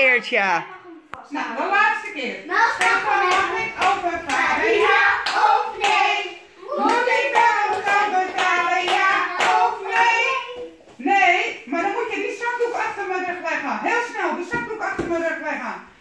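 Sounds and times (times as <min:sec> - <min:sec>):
voices singing: 0:02.4 - 0:11.0
hand clapping in steady beat: 0:02.8 - 0:06.1, 0:06.8 - 0:10.2.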